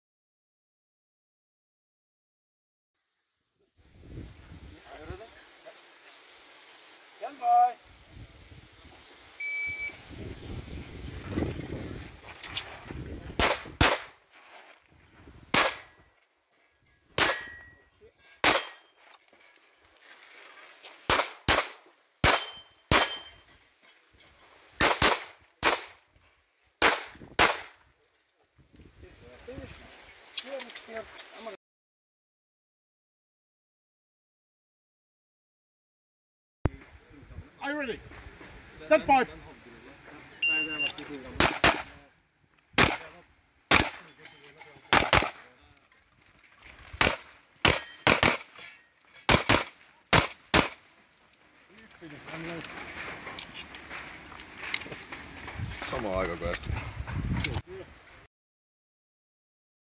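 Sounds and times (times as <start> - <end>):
shot timer beep: 9.4 - 10.0, 40.4 - 41.0
handgun shots: 13.4 - 14.1, 15.5 - 15.9, 17.2 - 17.6, 18.4 - 18.9, 21.1 - 23.4, 24.8 - 25.9, 26.8 - 27.7, 41.4 - 41.9, 42.8 - 43.1, 43.7 - 44.1, 44.9 - 45.4, 47.0 - 48.6, 49.3 - 50.8
metallic ring of steel targets: 16.9 - 19.0, 22.3 - 23.6, 42.8 - 45.0, 47.6 - 48.9.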